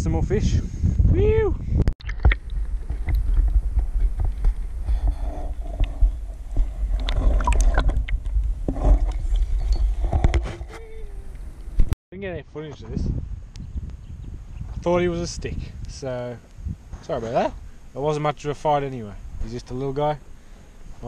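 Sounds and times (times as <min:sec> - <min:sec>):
low rumble: 0:00.0 - 0:12.0
water splashing on camera housing: 0:02.0 - 0:04.7
water sloshing and gurgling: 0:02.0 - 0:12.0.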